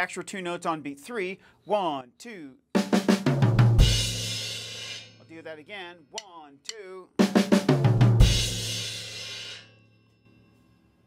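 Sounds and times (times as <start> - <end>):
drum kit fill on snare and toms: 2.8 - 5.4, 6.2 - 9.6
cymbal crash: 8.2 - 9.8.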